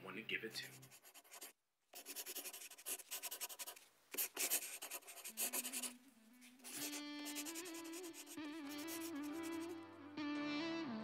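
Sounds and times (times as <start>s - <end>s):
pen scratching on paper: 0.7s - 5.9s, 6.6s - 9.6s.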